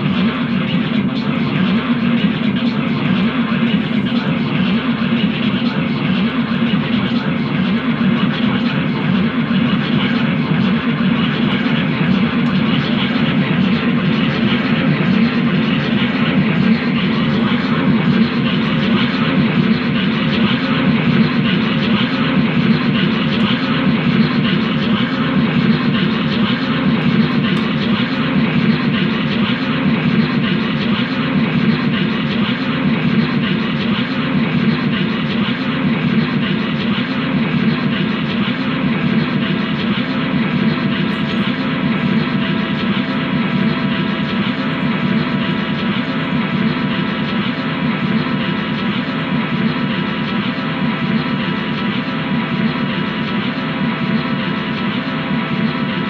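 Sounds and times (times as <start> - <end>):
guitar amplifier noise drone: 0.0 - 56.0.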